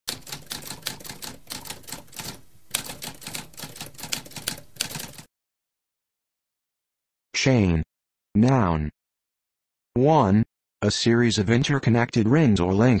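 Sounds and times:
typewriter typing: 0.1 - 5.3.

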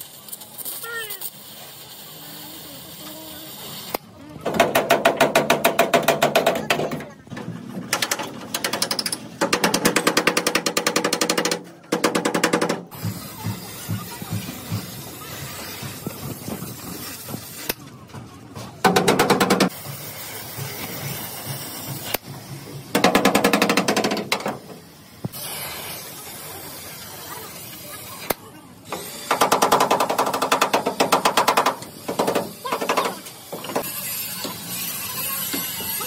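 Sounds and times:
gas torch hissing: 0.0 - 4.1, 19.7 - 23.0, 24.6 - 29.5, 31.7 - 36.0.

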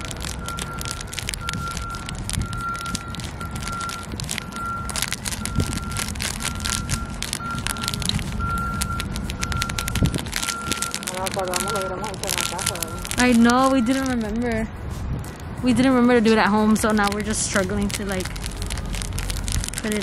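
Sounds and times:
plastic bag crinkling: 0.0 - 14.6, 15.8 - 20.0
wind rumble on microphone: 0.0 - 20.0.

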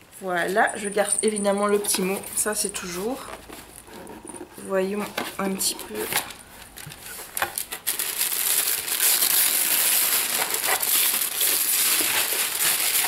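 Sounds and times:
wrapping paper tearing and crinkling: 5.8 - 13.0.

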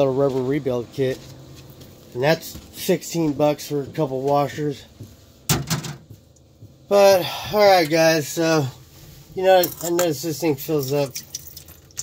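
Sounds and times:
cabinet door clunk and rattle: 5.5 - 6.1.

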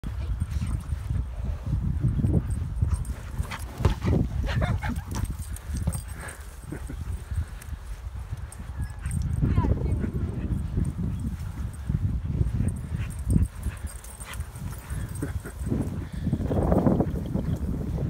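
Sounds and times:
scuffling and ball knocks: 3.0 - 6.6.

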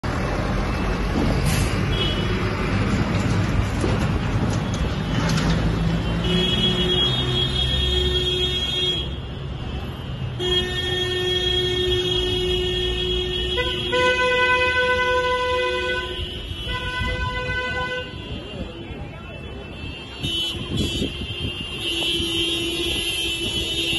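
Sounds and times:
running car engines: 0.0 - 23.9
car horns honking: 4.6 - 9.3, 10.3 - 18.8, 19.4 - 23.9.

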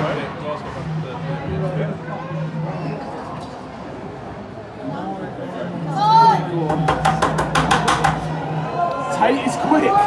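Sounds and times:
fast sharp knocks: 6.7 - 8.3.

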